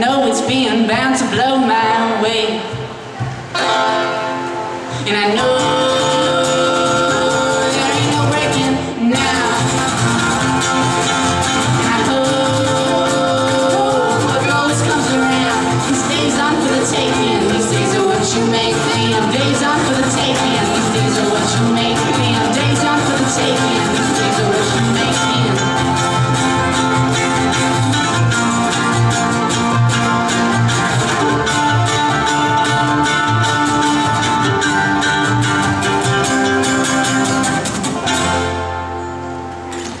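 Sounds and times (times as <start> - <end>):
acoustic guitar: 0.0 - 40.0
bluegrass string band playing: 0.0 - 40.0
mandolin: 0.0 - 40.0
banjo: 2.9 - 40.0
upright bass: 3.5 - 40.0.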